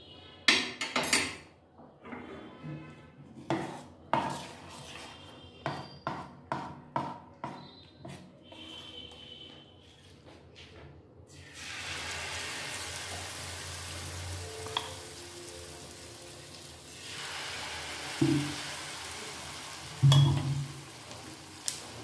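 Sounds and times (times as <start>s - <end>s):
batter sizzling in hot oil: 11.3s - 22.0s.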